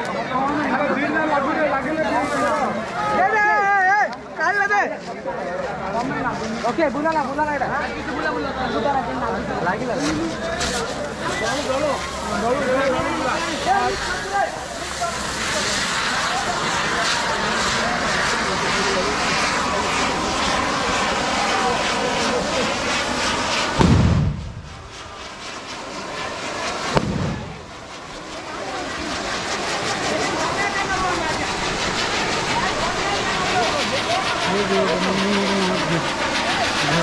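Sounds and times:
firework fountains hissing: 0.8 - 37.0.

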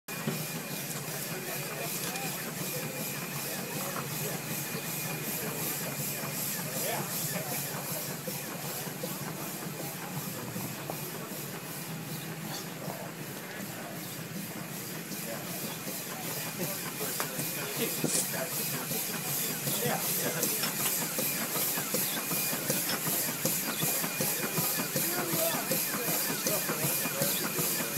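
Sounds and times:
steam hissing: 0.1 - 27.9.

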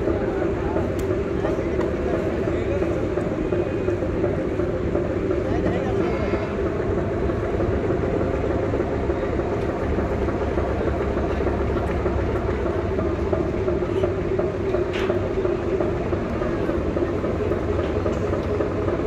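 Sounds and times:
diesel engines droning: 0.0 - 19.0.

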